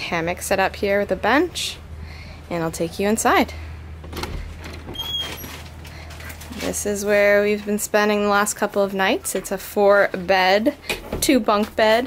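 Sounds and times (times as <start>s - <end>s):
wooden door opening: 4.0s - 6.5s.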